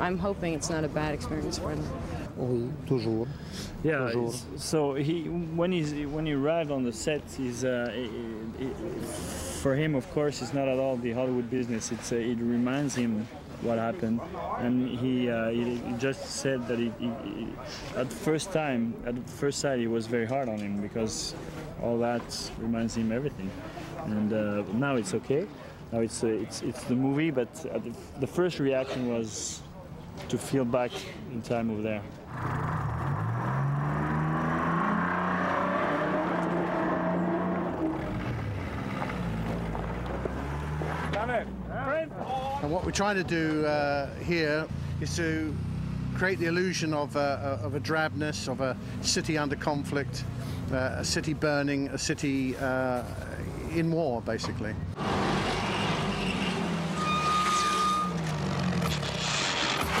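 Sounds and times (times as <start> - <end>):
car engine revving: 32.3 - 41.7
military vehicle engine: 55.0 - 60.0.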